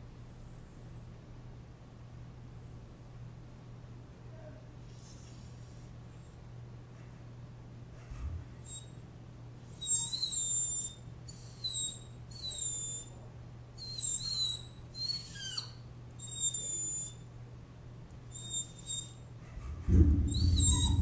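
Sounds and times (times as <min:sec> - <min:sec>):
small dogs whining: 0:08.6 - 0:09.0, 0:09.7 - 0:17.2, 0:18.3 - 0:21.0.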